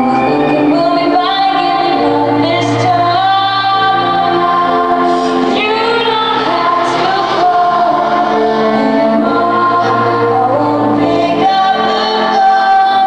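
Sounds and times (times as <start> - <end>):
grand piano accompaniment: 0.0 - 13.0
woman singing a ballad: 0.0 - 13.0.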